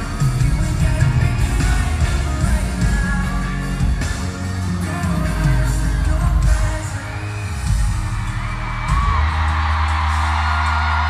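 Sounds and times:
person singing: 0.0s - 9.4s
loud pop music: 0.0s - 11.0s.

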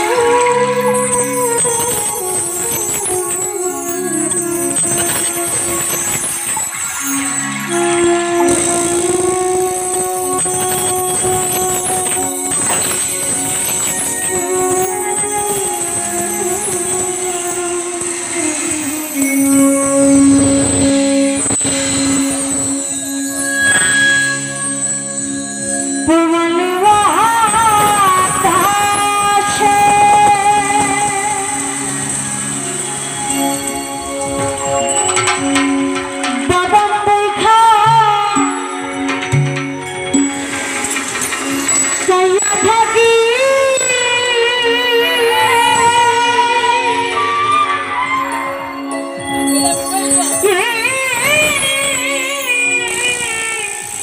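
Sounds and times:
bamboo flute long notes: 0.0s - 54.0s.

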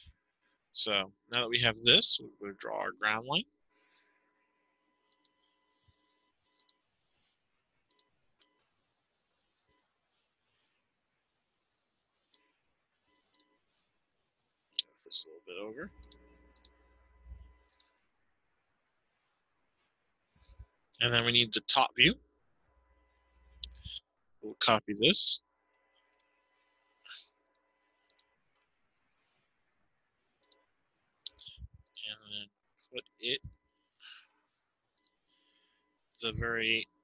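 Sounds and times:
faint low hum: 0.0s - 37.0s
computer mouse clicks: 15.9s - 16.8s.

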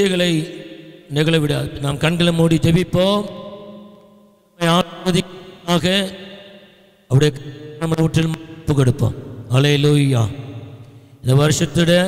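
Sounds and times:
man chanting through loudspeaker: 0.0s - 4.0s, 4.6s - 12.0s.

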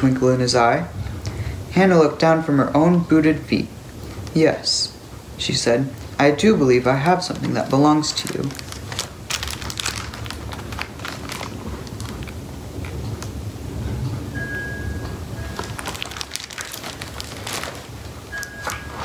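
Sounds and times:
paper rustling: 7.1s - 12.4s, 15.5s - 19.0s
book pages turning: 7.2s - 12.4s, 15.6s - 19.0s.

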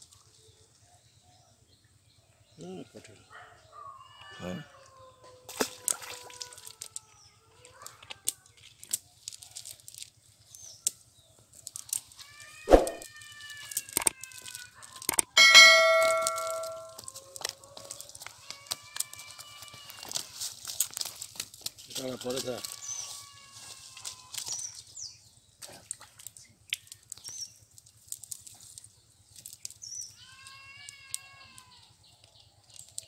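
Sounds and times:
rustling of net and leaves: 5.5s - 10.8s, 11.4s - 30.7s
short pitched calls: 12.7s - 13.0s
loud metallic ding: 15.4s - 17.0s.

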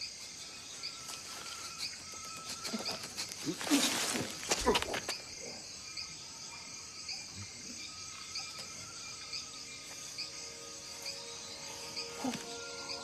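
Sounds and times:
insects chirping and trilling: 0.0s - 13.0s
rustling: 1.0s - 5.1s.

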